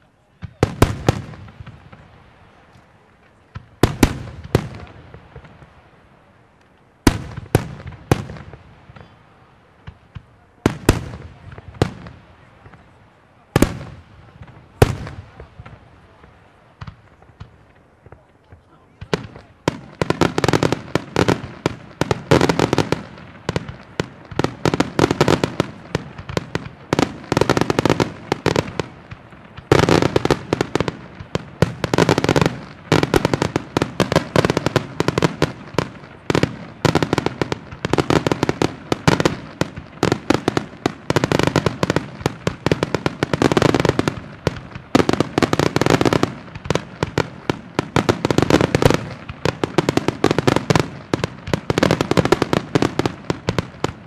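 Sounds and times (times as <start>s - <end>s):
rapid firework bangs and crackle: 0.0s - 54.0s.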